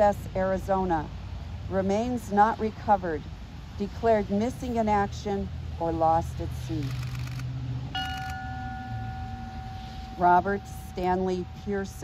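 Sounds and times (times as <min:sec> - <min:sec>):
bell ringing: 0:08.0 - 0:12.0.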